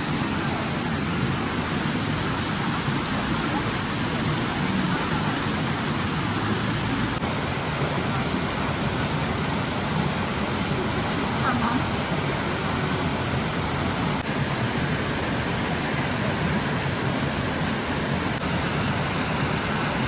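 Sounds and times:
stream rushing over rocks: 0:00.0 - 0:20.0.

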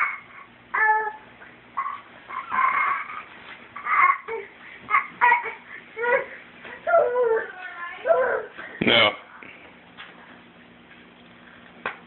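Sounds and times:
baby squealing and babbling: 0:00.0 - 0:01.2, 0:01.8 - 0:06.3.

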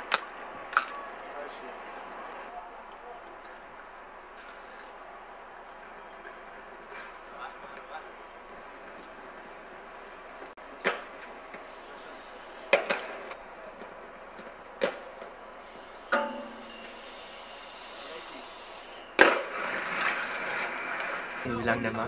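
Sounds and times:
skate wheels rolling on pavement: 0:00.0 - 0:22.0
skate hitting metal handrail: 0:12.7 - 0:13.4, 0:16.1 - 0:17.0, 0:19.2 - 0:21.4
skater landing impact: 0:19.2 - 0:21.4.

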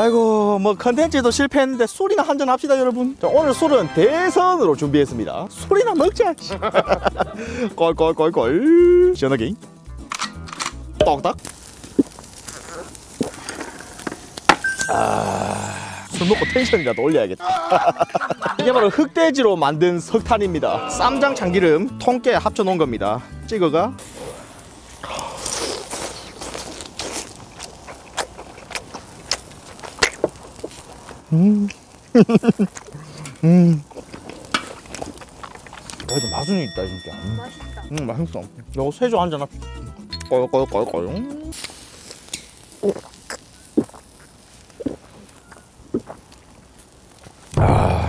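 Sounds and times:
man chewing crunchy food: 0:11.6 - 0:14.4, 0:25.0 - 0:36.1, 0:42.8 - 0:46.9
man swallowing: 0:14.8 - 0:16.1, 0:47.6 - 0:48.0.

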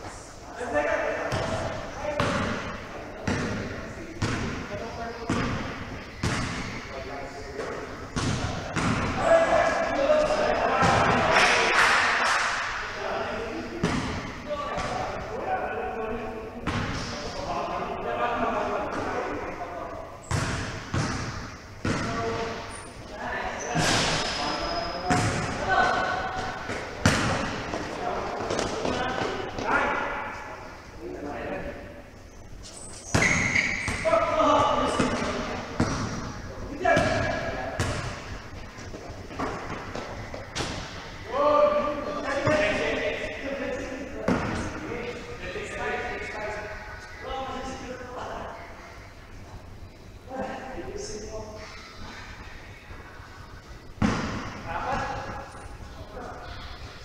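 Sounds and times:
basketball bouncing on court: 0:01.3 - 0:04.6, 0:05.3 - 0:06.8, 0:08.2 - 0:09.2, 0:13.8 - 0:15.0, 0:20.3 - 0:22.6, 0:25.1 - 0:27.8, 0:34.9 - 0:36.3, 0:37.0 - 0:38.3.

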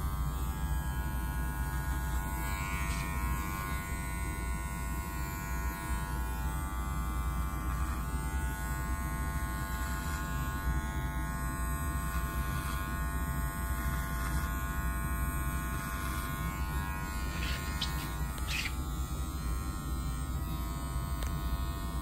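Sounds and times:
hair clipper buzzing: 0:00.0 - 0:22.0.

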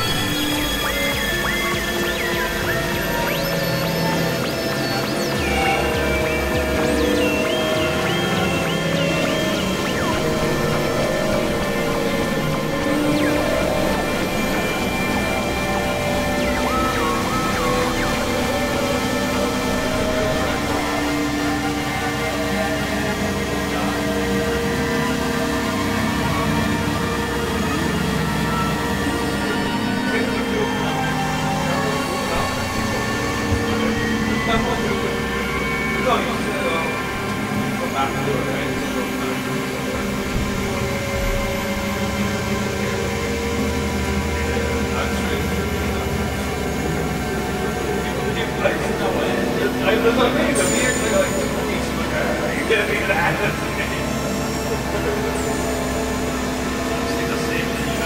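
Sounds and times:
synthesizer drones: 0:00.0 - 0:58.0
warbling high tones: 0:00.0 - 0:58.0.

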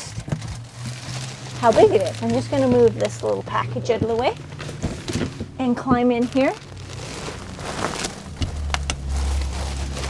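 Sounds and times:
plastic crinkling: 0:00.0 - 0:10.0
steady low rumble: 0:00.6 - 0:10.0.

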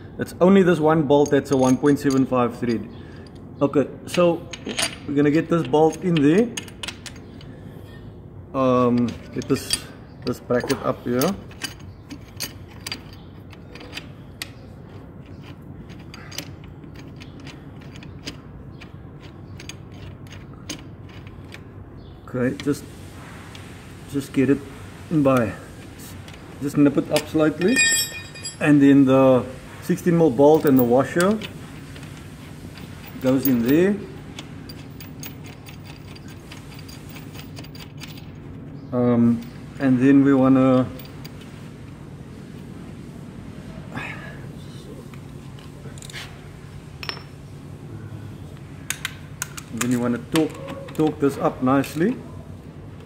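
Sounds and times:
steady low hum: 0:02.5 - 0:50.4
hex key knocking against metal: 0:27.2 - 0:28.6.

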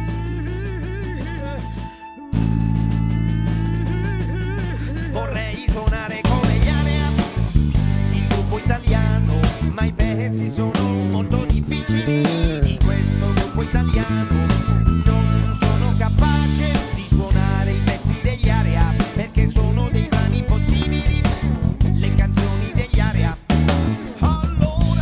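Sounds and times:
full band playing: 0:00.0 - 0:08.7, 0:09.3 - 0:18.3, 0:18.9 - 0:25.0
electric bass played fingerstyle: 0:00.0 - 0:25.0
steady drum hits: 0:18.9 - 0:22.6.

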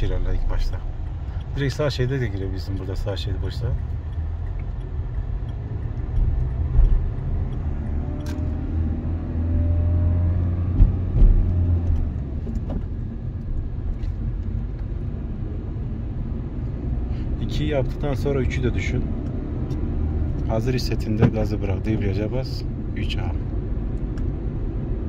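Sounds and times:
car engine accelerating: 0:00.0 - 0:15.8
short thumps: 0:10.6 - 0:13.0.

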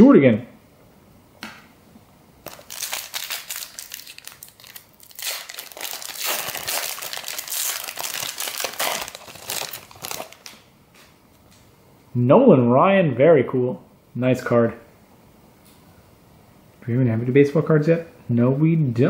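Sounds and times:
wrapper crinkling and tearing: 0:02.4 - 0:10.6.

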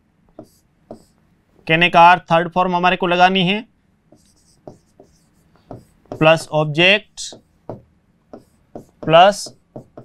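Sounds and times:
marker tapping on whiteboard: 0:00.3 - 0:01.1, 0:04.1 - 0:06.5, 0:07.2 - 0:10.0
marker scratching on whiteboard: 0:00.3 - 0:01.2, 0:04.1 - 0:06.6, 0:07.2 - 0:10.0.

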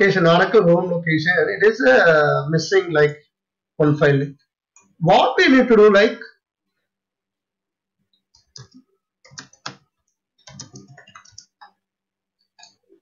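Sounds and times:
computer keyboard typing: 0:08.3 - 0:13.0.

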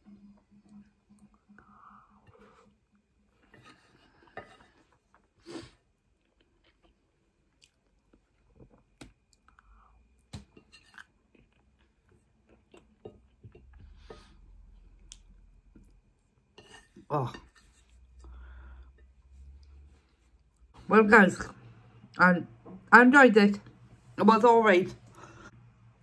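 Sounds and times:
close-up chewing: 0:04.9 - 0:10.3.

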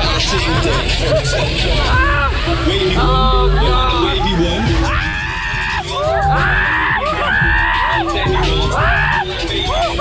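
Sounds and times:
ride music with heavy bass: 0:00.0 - 0:10.0
riders screaming: 0:04.0 - 0:10.0.

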